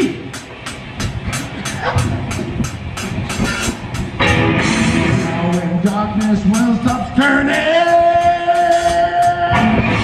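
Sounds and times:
rock drums beat: 0.0s - 10.0s
bass guitar: 0.9s - 10.0s
electric guitar: 1.9s - 10.0s.

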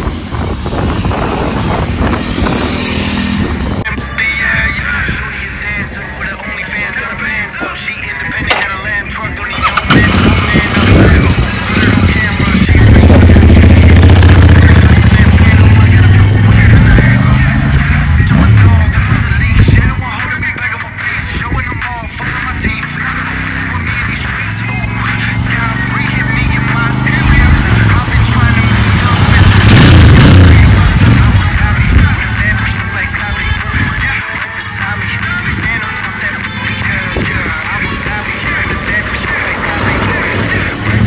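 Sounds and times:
deep pulsing exhaust: 0.0s - 41.0s
motorcycle engine passing by: 1.1s - 3.8s, 24.4s - 30.7s
song with singing: 3.8s - 29.7s, 30.4s - 41.0s
motorcycle engine starting: 6.9s - 33.1s, 34.8s - 41.0s.

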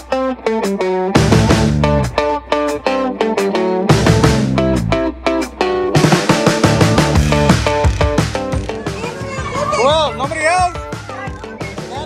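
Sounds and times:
party music with steady beat: 0.0s - 12.0s
children calling and squealing: 7.3s - 12.0s.

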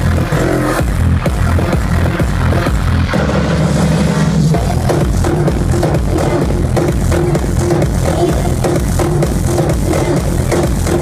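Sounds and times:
loud progressive house music: 0.0s - 11.0s.

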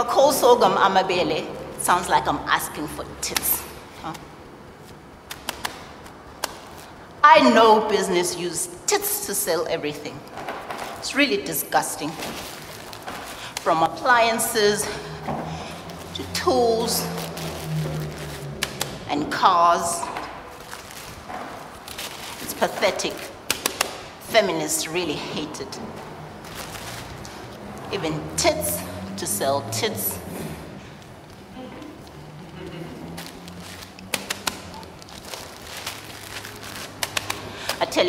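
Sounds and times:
plastic bags crackling: 11.9s - 14.0s, 14.8s - 19.1s, 19.9s - 24.2s, 26.0s - 27.8s, 31.0s - 38.0s.

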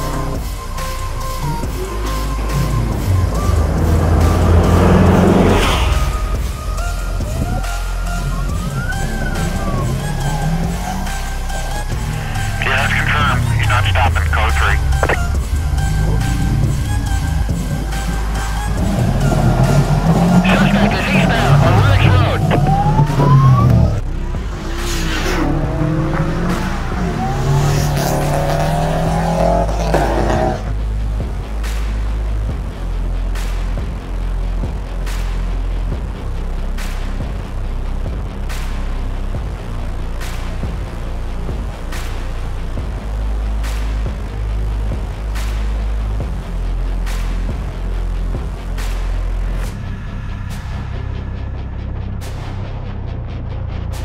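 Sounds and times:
car engine accelerating: 0.0s - 31.3s
rock music: 11.6s - 30.7s.

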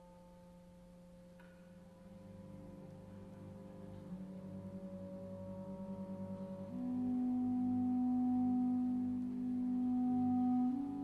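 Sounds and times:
string orchestra pulsing low note: 2.0s - 11.0s
clarinet held low note: 4.0s - 11.0s.

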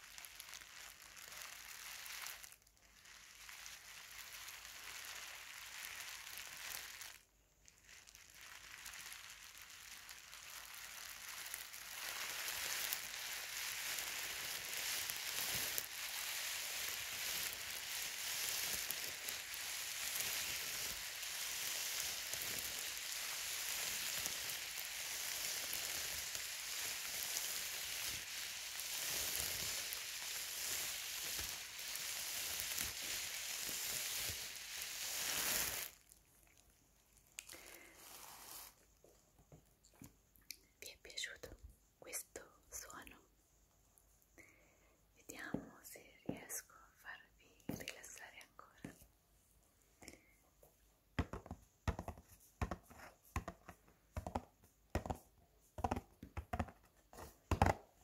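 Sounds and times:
plastic bag crinkling: 0.0s - 38.9s.

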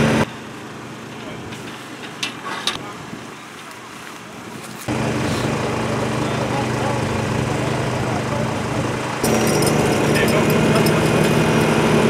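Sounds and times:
low engine hum: 0.0s - 1.5s, 4.9s - 12.0s
small engine humming: 4.9s - 12.0s.

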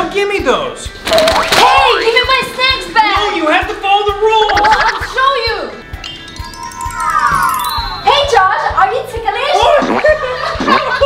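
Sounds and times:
background music with beat: 4.1s - 8.3s.

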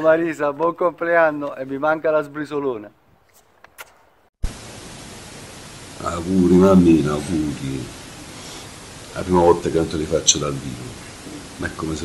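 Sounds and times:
steady hiss: 4.4s - 12.0s.

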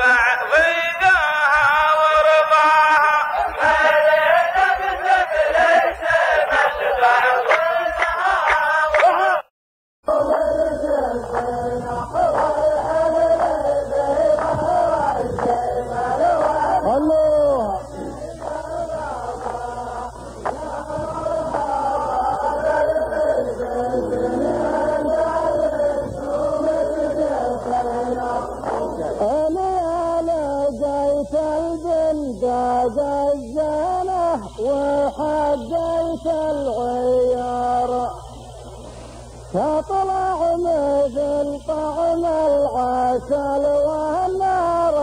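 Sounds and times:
steady low hum: 0.0s - 9.4s, 10.0s - 45.0s
men chanting in unison: 0.0s - 9.5s, 10.1s - 38.4s.

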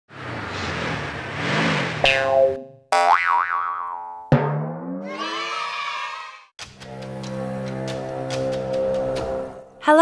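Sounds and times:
strong rushing noise: 0.1s - 2.0s.

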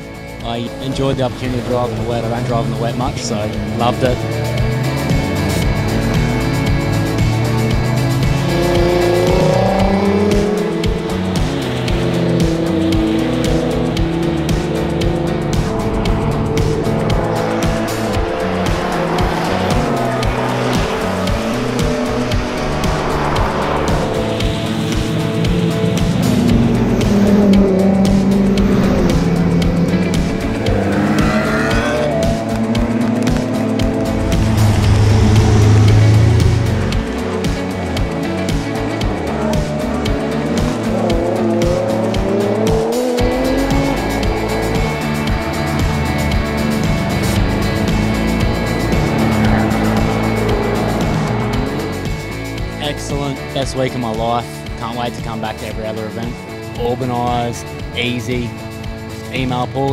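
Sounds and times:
sports cars driving past: 0.0s - 59.8s
background music: 0.0s - 59.9s
engines revving: 0.0s - 59.9s.

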